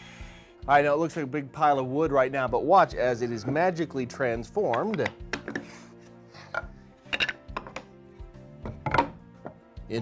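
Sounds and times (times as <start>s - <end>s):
background music: 0.0s - 10.0s
wooden boards knocking on workbench: 4.7s - 5.7s, 6.5s - 7.9s, 8.6s - 9.6s.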